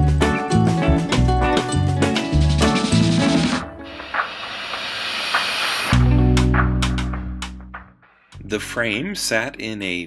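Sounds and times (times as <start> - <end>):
steady hiss: 3.8 - 6.0.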